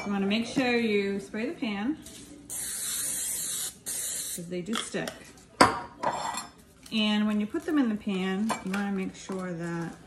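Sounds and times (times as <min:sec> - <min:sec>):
metal kitchenware clattering: 0:04.7 - 0:06.6.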